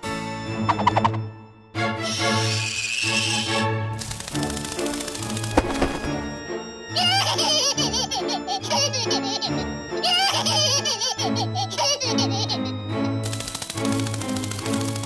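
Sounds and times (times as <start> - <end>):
background music: 0.0 - 15.0
cartoon character wailing and sobbing: 6.9 - 12.5.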